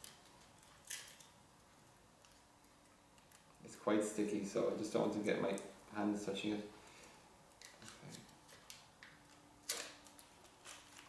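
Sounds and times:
protective sheet crinkling as peeled: 0:07.7 - 0:11.0.

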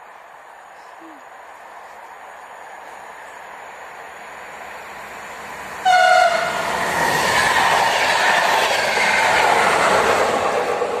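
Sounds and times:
train wheels on rails: 0:01.4 - 0:11.0
train horn blast: 0:05.8 - 0:06.6.

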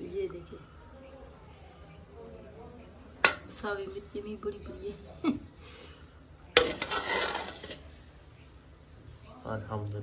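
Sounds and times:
spoon scooping rice: 0:06.5 - 0:08.0.

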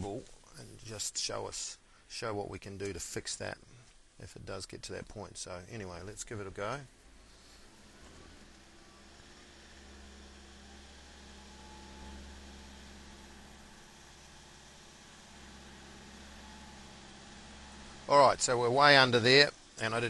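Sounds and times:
muffled diesel engine drone: 0:07.1 - 0:19.8.

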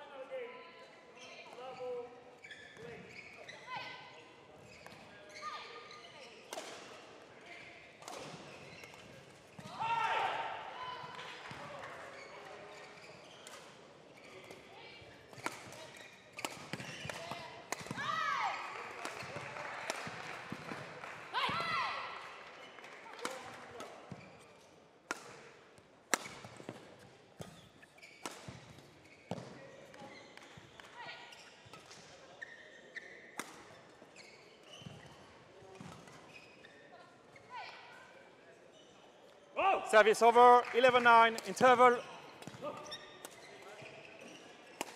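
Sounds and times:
shoes squeaking on court: 0:00.9 - 0:09.8, 0:11.4 - 0:20.3, 0:22.5 - 0:25.4, 0:26.1 - 0:39.6, 0:41.0 - 0:44.9.

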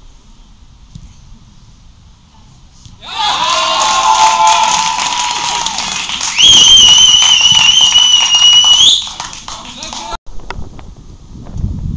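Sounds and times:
people shouting and cheering: 0:03.0 - 0:10.2
long whistle rising in pitch: 0:06.2 - 0:09.1.

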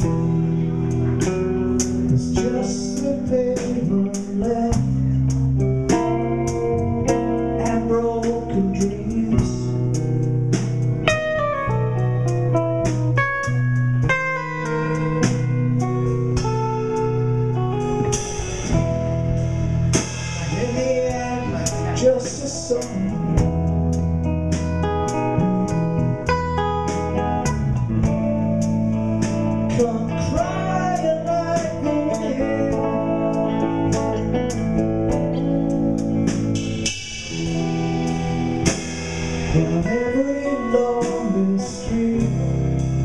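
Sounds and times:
drums and cymbals: 0:00.0 - 0:43.0
electric bass notes: 0:00.0 - 0:43.0
electric guitar lines: 0:00.0 - 0:43.0
person singing: 0:02.1 - 0:10.0, 0:20.3 - 0:23.7, 0:29.6 - 0:34.5, 0:39.4 - 0:43.0.

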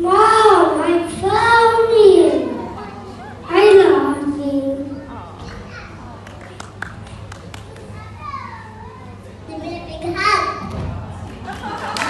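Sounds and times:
children's voices and chatter: 0:00.0 - 0:10.8
steady low hum: 0:00.0 - 0:12.0.

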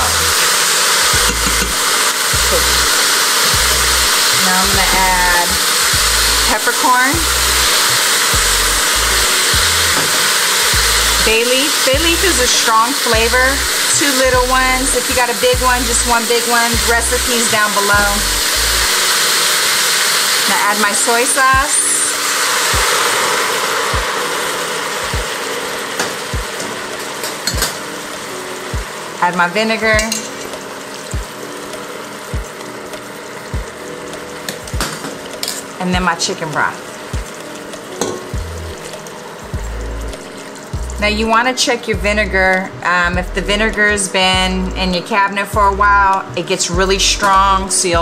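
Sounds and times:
background music with soft beat: 0:00.0 - 0:20.5, 0:21.2 - 0:48.0
chicken sizzling in a pot: 0:00.0 - 0:43.1
background music with bass beat: 0:01.2 - 0:02.9, 0:03.5 - 0:04.1, 0:04.7 - 0:06.5, 0:08.3 - 0:10.0, 0:38.3 - 0:41.2.

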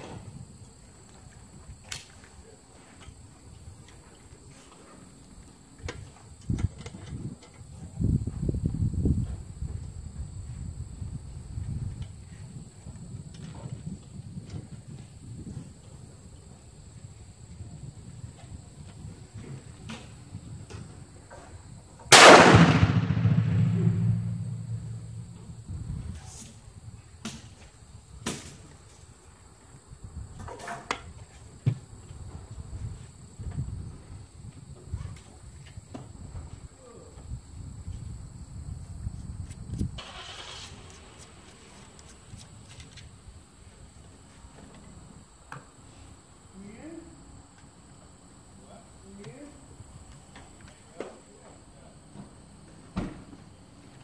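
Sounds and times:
shotgun shot echoing: 0:22.1 - 0:25.5.

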